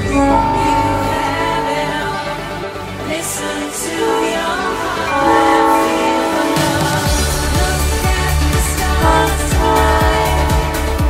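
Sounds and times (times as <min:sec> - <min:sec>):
background music: 0:00.0 - 0:11.0
locomotive air horn blast: 0:05.1 - 0:07.1.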